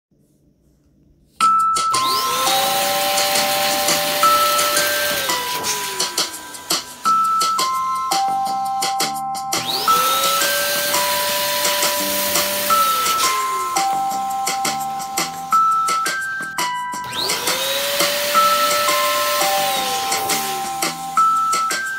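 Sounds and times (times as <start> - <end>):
light background music: 1.4 - 21.9
electric balloon pump motor whine: 2.0 - 7.9, 9.6 - 15.8, 17.0 - 21.9.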